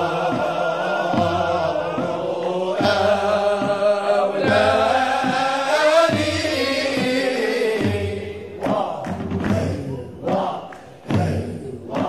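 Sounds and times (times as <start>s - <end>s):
choir chanting: 0.0s - 12.0s
steady low beat: 0.0s - 12.0s.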